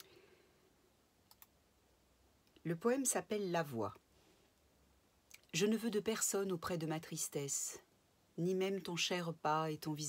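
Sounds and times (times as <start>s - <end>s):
faint clicks: 1.2s - 1.6s.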